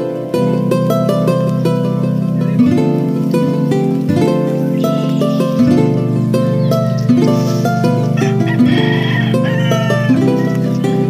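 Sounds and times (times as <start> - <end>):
plucked strings music: 0.0 - 11.0
high wavering call: 1.5 - 11.0.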